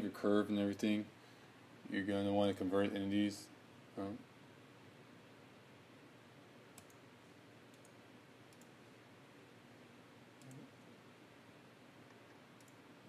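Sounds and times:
room hiss: 0:00.0 - 0:13.0
computer mouse clicks: 0:06.7 - 0:07.0, 0:07.7 - 0:08.8, 0:10.4 - 0:10.7, 0:12.1 - 0:12.8.

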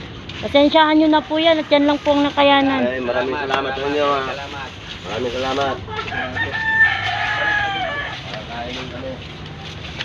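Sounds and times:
rooster crowing: 0:05.8 - 0:08.6.

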